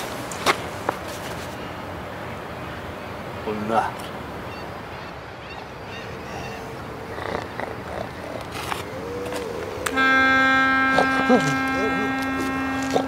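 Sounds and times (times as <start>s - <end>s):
faint background noise: 0.0s - 13.0s
factory siren: 9.2s - 13.0s.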